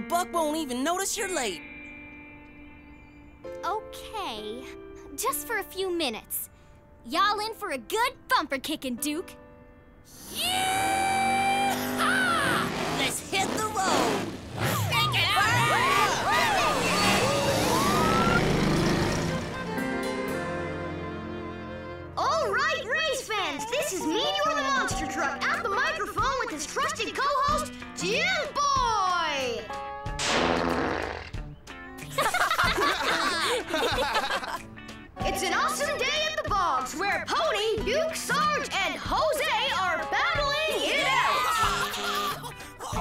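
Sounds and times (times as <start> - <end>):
background music: 0.0 - 43.0
cartoon truck engines revving: 10.2 - 20.4
whoops and cheers: 10.3 - 12.7, 14.8 - 18.6, 41.0 - 42.4
falling pitched glide: 10.3 - 19.8
cartoon music with steady beat: 19.4 - 22.2.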